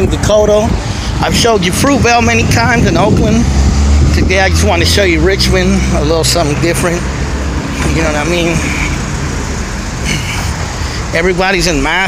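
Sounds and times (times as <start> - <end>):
cars driving past: 0.0 - 12.0.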